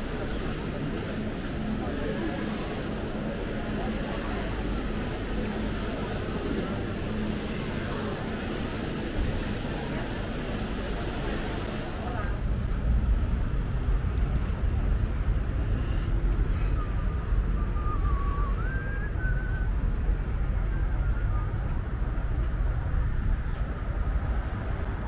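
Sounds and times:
indoor crowd chatter: 0:00.0 - 0:25.0
street traffic: 0:00.0 - 0:25.0
wind rumble on microphone: 0:12.3 - 0:25.0.

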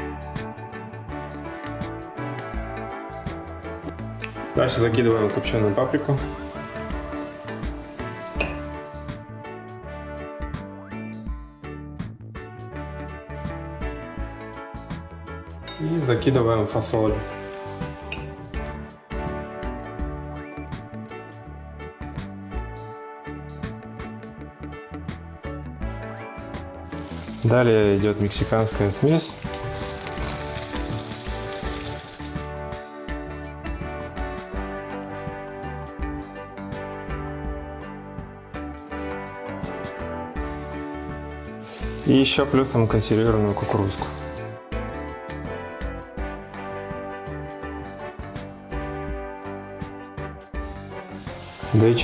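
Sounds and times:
background music: 0:00.0 - 0:52.0
onion sizzling in oil: 0:05.2 - 0:09.2, 0:16.0 - 0:18.8, 0:26.9 - 0:32.5, 0:41.6 - 0:44.6, 0:50.9 - 0:52.0.

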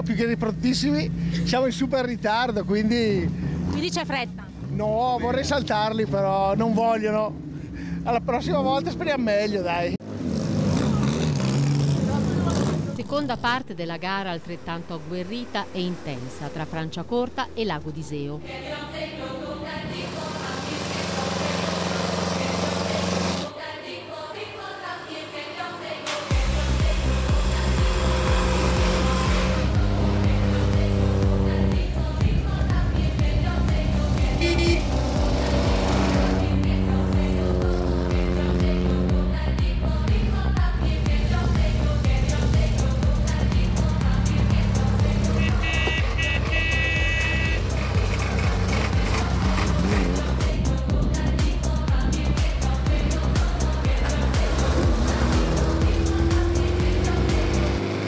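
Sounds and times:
car engine running: 0:00.0 - 0:10.0, 0:10.7 - 0:23.5, 0:26.3 - 0:58.0
background music with steady beat: 0:25.1 - 0:58.0.

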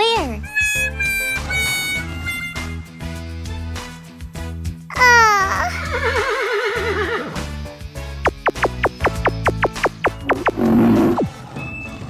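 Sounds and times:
background music: 0:00.0 - 0:12.0
horse whinnying: 0:05.7 - 0:07.4.

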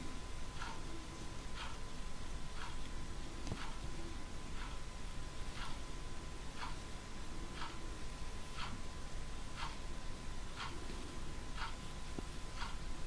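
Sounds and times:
faint high-pitched hum: 0:00.0 - 0:13.0
clock ticking: 0:00.5 - 0:00.9, 0:01.5 - 0:01.9, 0:02.5 - 0:02.9, 0:03.5 - 0:03.8, 0:04.5 - 0:04.9, 0:05.5 - 0:05.9, 0:06.6 - 0:06.8, 0:07.5 - 0:07.8, 0:08.6 - 0:08.8, 0:09.6 - 0:09.8, 0:10.5 - 0:10.8, 0:11.5 - 0:11.8, 0:12.5 - 0:13.0.

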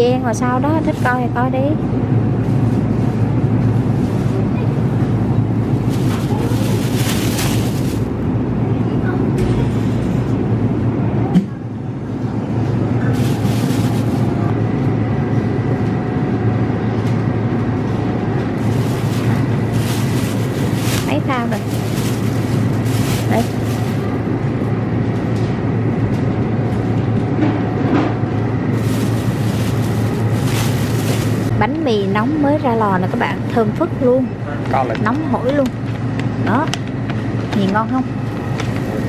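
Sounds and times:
low background rumble: 0:00.0 - 0:39.0
plastic bag rustling: 0:05.7 - 0:08.1, 0:13.0 - 0:14.4, 0:18.5 - 0:24.3, 0:28.7 - 0:31.6.

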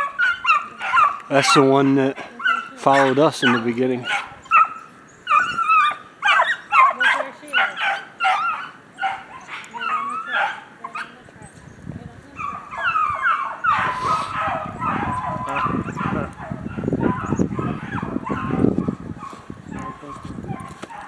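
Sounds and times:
hounds baying: 0:00.0 - 0:11.3, 0:12.3 - 0:21.0.

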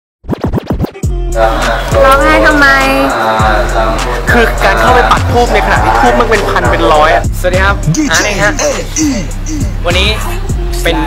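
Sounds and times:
turntable scratching: 0:00.2 - 0:03.1, 0:04.0 - 0:08.4
hip hop music: 0:00.2 - 0:11.0.

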